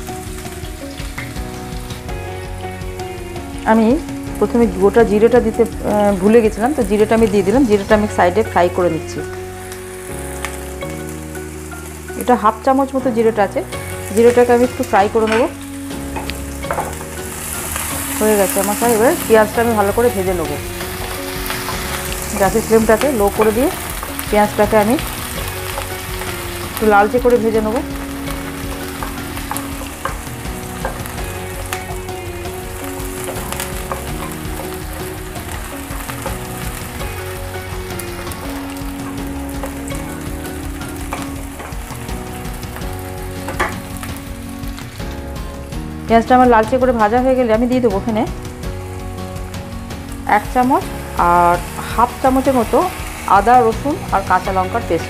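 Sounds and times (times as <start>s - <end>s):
onions sizzling in frying pan: 0.0s - 55.0s.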